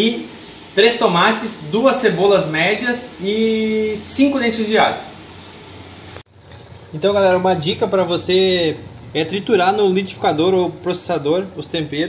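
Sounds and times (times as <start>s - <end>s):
background hiss: 0.0s - 12.0s
person speaking: 6.9s - 12.0s.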